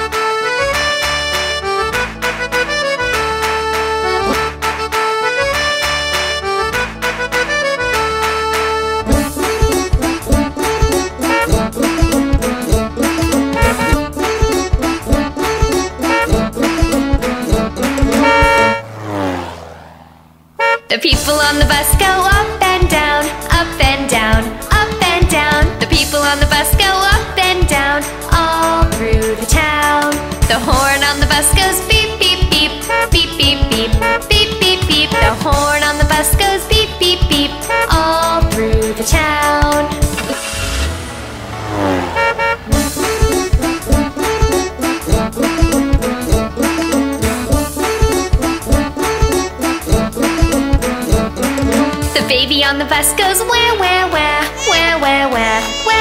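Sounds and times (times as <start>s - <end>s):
cartoon bus horn toots: 0.0s - 19.0s, 20.6s - 23.6s, 30.7s - 56.0s
children's song: 9.1s - 18.7s, 20.9s - 40.4s, 42.7s - 56.0s
cartoon car horn sliding down: 13.3s - 14.0s, 17.8s - 19.6s, 20.6s - 21.0s, 40.0s - 43.5s, 54.4s - 56.0s
whoosh gliding down in pitch: 18.0s - 20.4s.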